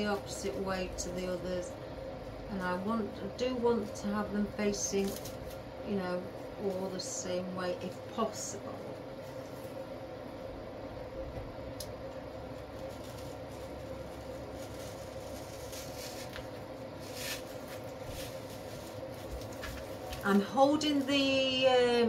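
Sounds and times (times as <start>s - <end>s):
room hum: 0.0s - 22.0s
flower stems clicking and rustling: 4.8s - 5.6s, 11.8s - 21.6s.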